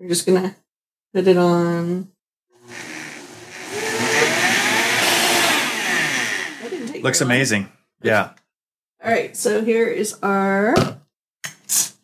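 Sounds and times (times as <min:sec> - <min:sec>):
blender running: 0:02.6 - 0:07.2.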